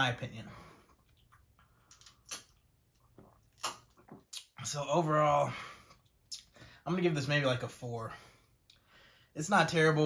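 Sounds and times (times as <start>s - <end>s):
man gulping soda: 1.0s - 4.6s.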